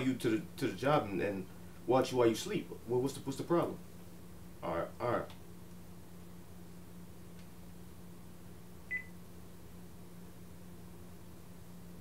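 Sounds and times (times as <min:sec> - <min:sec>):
low steady hum: 0:00.0 - 0:12.0
phone beep: 0:08.9 - 0:09.1.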